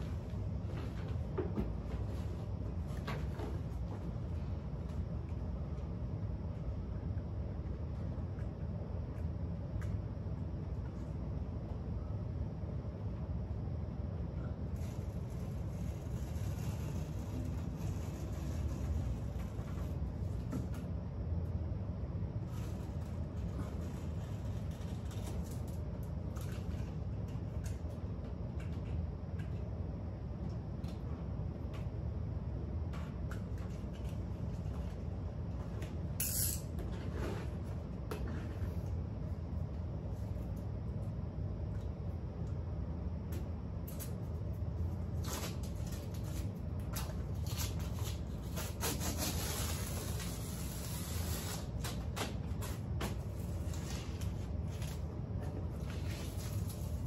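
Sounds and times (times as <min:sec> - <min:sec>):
blade cutting wallpaper: 0:14.8 - 0:20.4, 0:45.2 - 0:54.2
tape and paper tearing away: 0:47.3 - 0:52.8.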